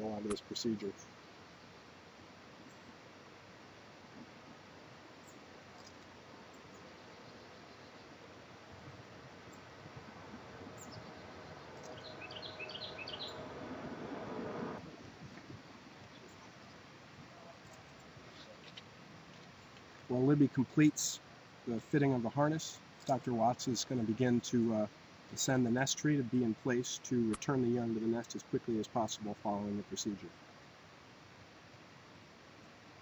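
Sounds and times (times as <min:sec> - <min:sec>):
bird chirping: 0:06.5 - 0:08.2, 0:10.4 - 0:14.8
low rumble with hum: 0:09.9 - 0:14.8.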